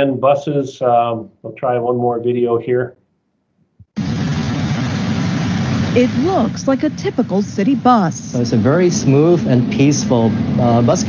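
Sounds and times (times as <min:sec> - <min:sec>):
bus rumble and road noise: 0:08.0 - 0:11.0.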